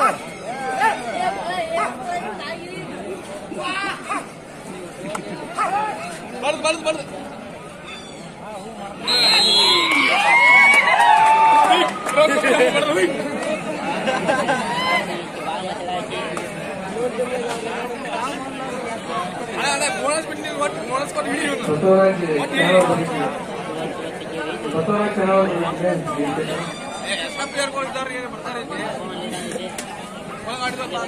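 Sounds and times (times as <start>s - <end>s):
crowd chatter: 0.0s - 31.0s
voices talking and calling: 0.0s - 31.0s.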